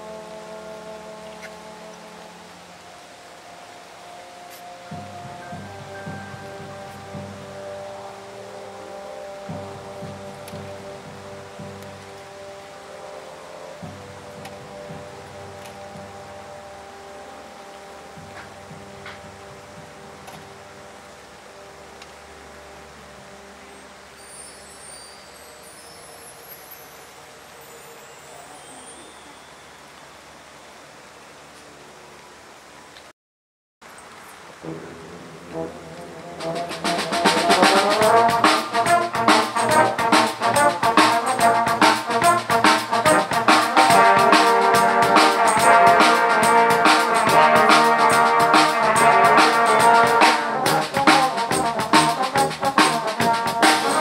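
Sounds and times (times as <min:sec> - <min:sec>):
brass band playing softly: 0:00.0 - 0:24.8, 0:34.5 - 0:54.0
light rain hiss: 0:00.0 - 0:33.1, 0:33.8 - 0:54.0
faint high chirps: 0:23.6 - 0:30.8
low brass bass figure: 0:34.6 - 0:54.0.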